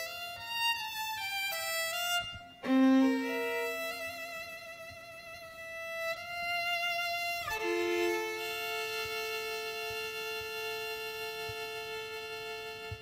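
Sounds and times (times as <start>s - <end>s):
solo violin bowed: 0.0s - 13.0s.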